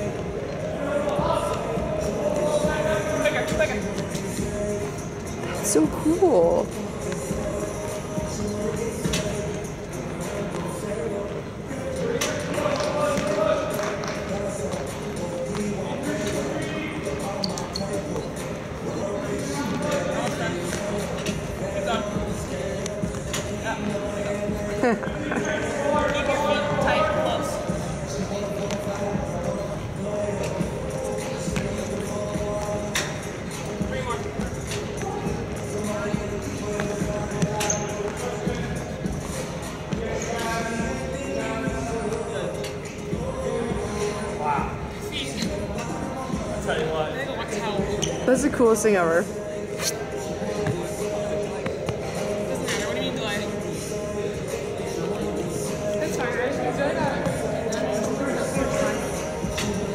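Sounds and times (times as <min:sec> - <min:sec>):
music playing: 0:00.0 - 0:59.9
laughter: 0:24.7 - 0:25.4.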